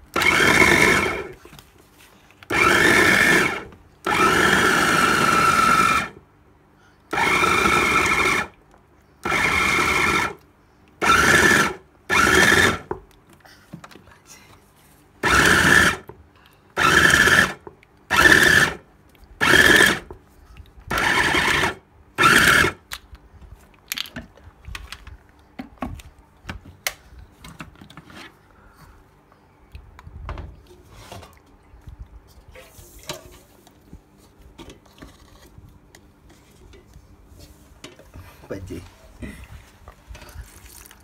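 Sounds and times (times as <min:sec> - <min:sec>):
food processor motor pulsing: 0:00.1 - 0:01.4, 0:02.5 - 0:06.2, 0:07.1 - 0:08.6, 0:09.2 - 0:10.4, 0:11.0 - 0:12.9, 0:15.2 - 0:16.1, 0:16.8 - 0:18.8, 0:19.4 - 0:20.1, 0:20.9 - 0:22.8.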